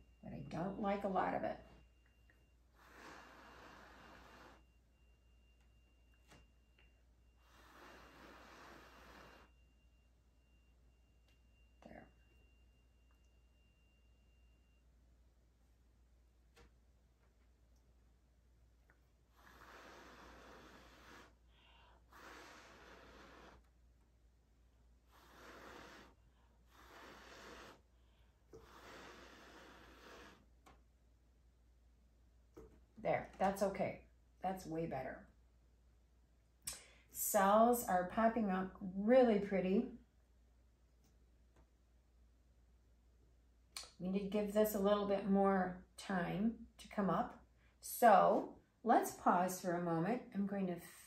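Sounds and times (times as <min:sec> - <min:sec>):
soft breaths blown by mouth: 0:02.5 - 0:05.2, 0:07.2 - 0:09.9, 0:19.0 - 0:23.8, 0:25.0 - 0:30.8.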